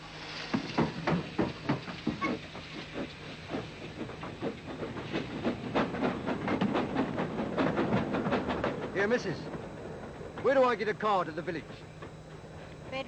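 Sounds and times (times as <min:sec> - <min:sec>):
steam locomotive chuffing: 0:00.0 - 0:13.0.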